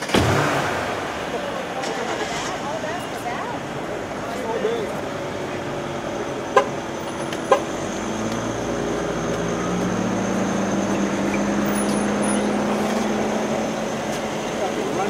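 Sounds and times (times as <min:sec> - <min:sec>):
car engine humming: 0:00.0 - 0:15.0.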